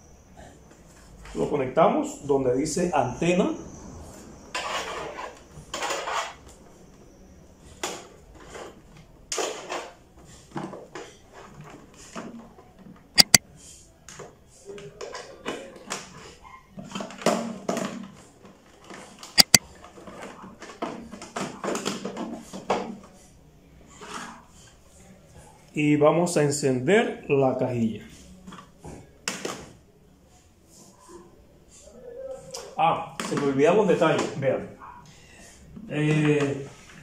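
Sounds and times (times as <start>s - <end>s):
sharp double clicks: 13.2s - 13.4s, 19.4s - 19.6s.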